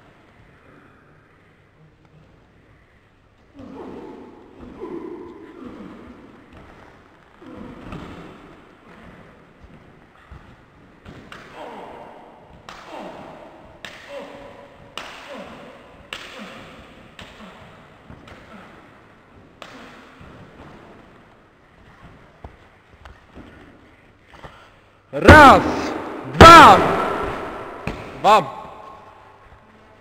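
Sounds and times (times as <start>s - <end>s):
people shouting and yelling: 25.2s - 29.1s.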